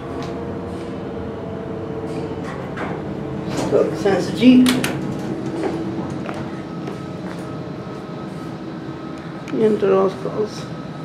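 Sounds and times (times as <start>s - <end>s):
elevator mechanical hum and rumble: 0.0s - 11.0s
faint held whine: 0.0s - 11.0s.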